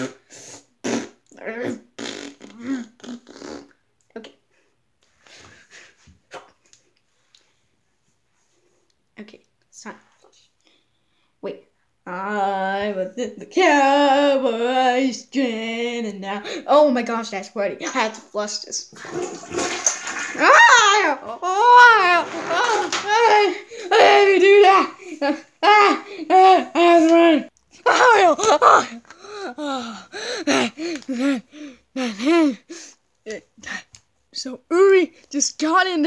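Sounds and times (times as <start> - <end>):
person clearing throat and straining: 0.9 - 3.5, 28.0 - 32.6
toilet flushing: 18.9 - 21.3, 22.0 - 23.1
child shrieking: 20.4 - 25.0, 25.6 - 27.3, 27.9 - 30.8.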